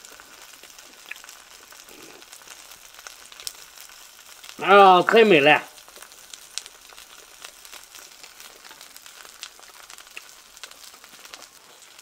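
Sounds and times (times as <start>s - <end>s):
faint sizzling in pan: 0.0s - 12.0s
small crackles: 0.0s - 12.0s.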